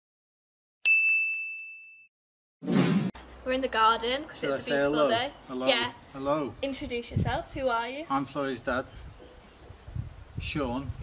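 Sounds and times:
bright chime ding: 0.9s - 2.1s.

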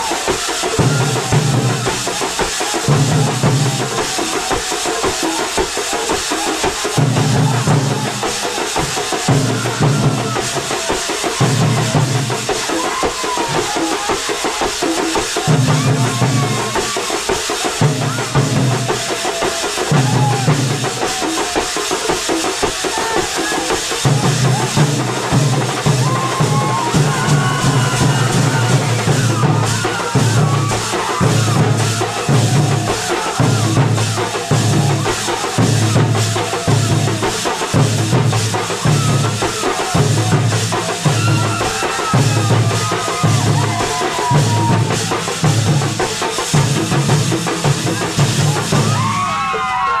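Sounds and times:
heavy low drum strokes: 0.0s - 12.7s, 22.1s - 49.1s
metal percussion clashing: 0.0s - 50.0s.

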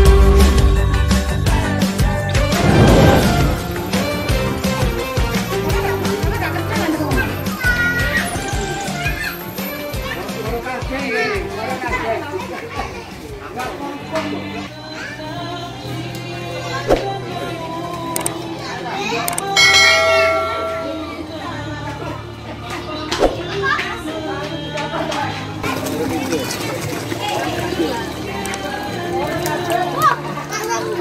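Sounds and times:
music: 0.0s - 31.0s
children calling and chattering: 2.7s - 31.0s.

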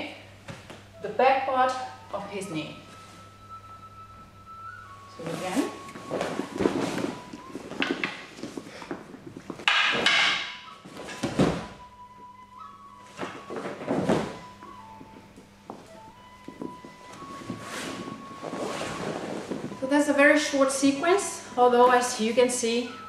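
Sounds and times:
thuds of stepping and kneeling: 9.5s - 11.8s.

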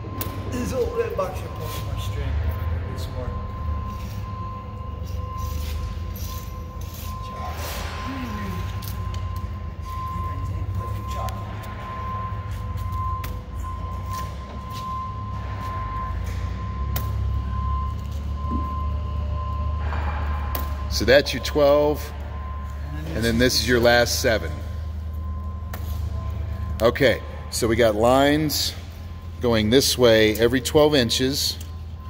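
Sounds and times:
high-pitched whine: 0.0s - 32.0s
steady low hum: 0.0s - 32.0s.

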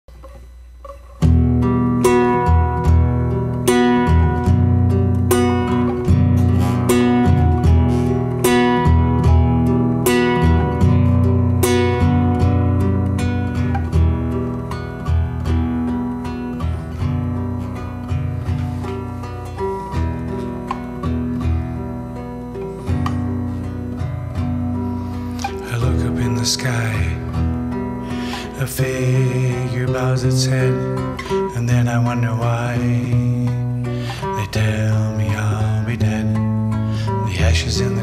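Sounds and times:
classical guitar playing: 0.1s - 38.0s.

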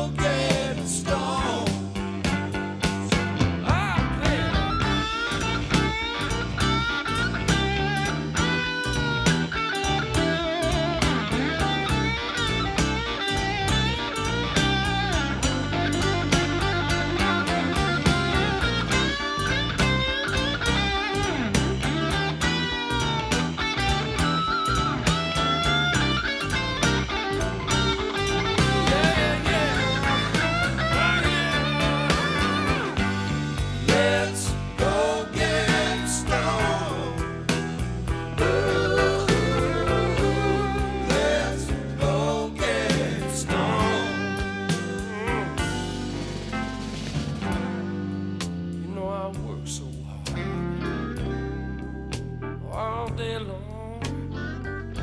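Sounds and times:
steady drum beat: 0.0s - 48.6s
lead electric guitar bending lines: 0.0s - 48.8s, 50.3s - 52.6s
bass guitar: 0.0s - 55.0s.

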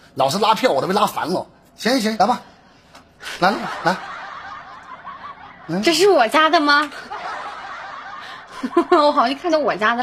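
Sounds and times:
woman speaking: 5.8s - 6.9s, 8.8s - 10.0s.

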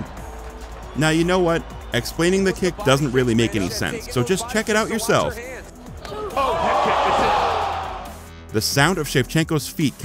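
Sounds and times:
arena crowd roar: 6.0s - 8.2s.

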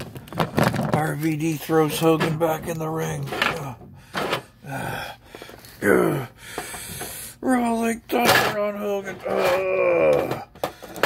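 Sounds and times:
man gasping and grunting: 3.9s - 7.4s
man groaning: 4.6s - 5.2s, 5.8s - 6.4s, 9.1s - 10.5s.

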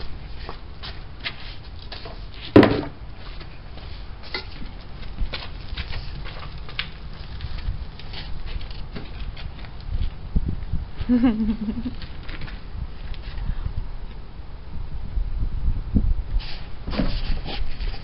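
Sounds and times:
wheelbarrow knocks and scrapes: 1.9s - 3.0s, 16.8s - 18.0s
loud sharp knock: 2.6s - 3.0s.

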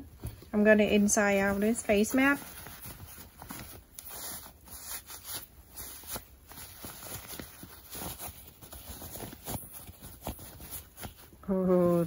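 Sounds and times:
cloth mask rustling: 0.0s - 12.0s.

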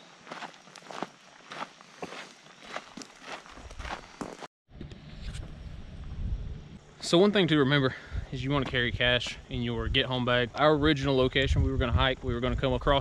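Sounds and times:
footsteps crunching on gravel: 0.2s - 4.5s, 8.5s - 9.4s
low steady rumble: 4.7s - 13.0s.

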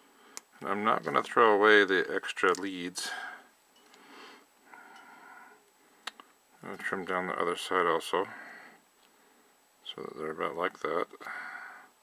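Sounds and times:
faint breathing through nose: 3.0s - 6.1s, 8.3s - 9.6s, 11.2s - 12.0s.

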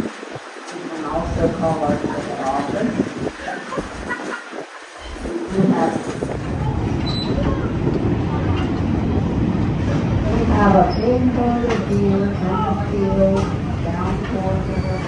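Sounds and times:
train wheels rumbling: 0.0s - 15.0s
people talking: 0.7s - 15.0s.

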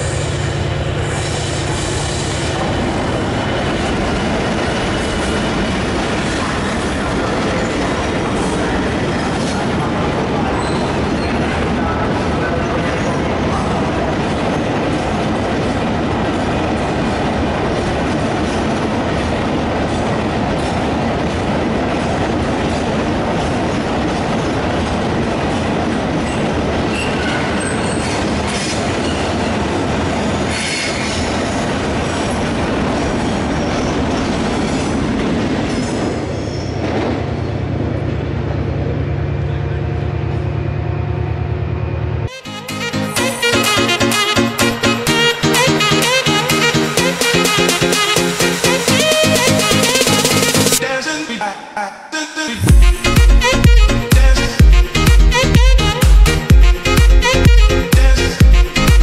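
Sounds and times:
train wheel squeal: 0.0s - 6.8s, 10.4s - 11.6s, 26.2s - 29.6s, 30.4s - 31.6s, 35.7s - 36.9s
freight train rumbling past: 0.0s - 51.2s, 52.6s - 59.0s
clickety-clack over rail joints: 1.2s - 39.0s.

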